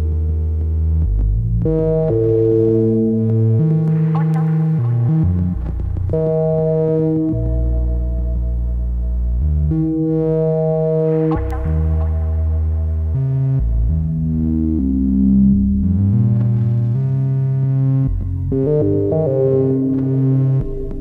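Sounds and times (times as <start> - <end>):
modular synthesizer ambient tones: 0.0 - 21.0.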